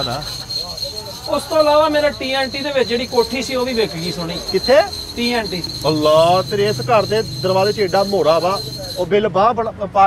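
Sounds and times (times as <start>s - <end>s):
crickets chirping: 0.0s - 9.2s
men talking: 0.0s - 10.0s.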